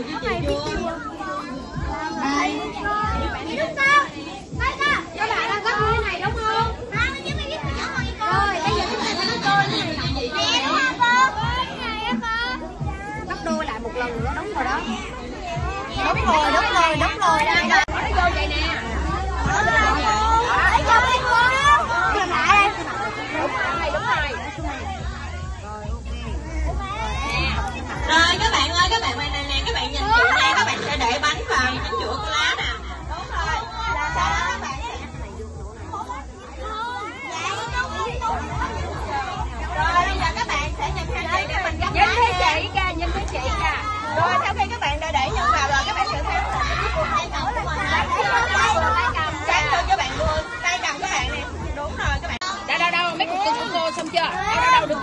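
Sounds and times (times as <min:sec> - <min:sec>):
crowd of children chattering: 0:00.0 - 0:55.0.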